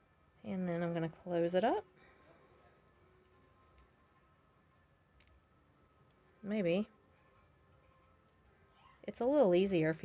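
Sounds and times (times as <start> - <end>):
faint small metal clicks: 5.2 - 5.4.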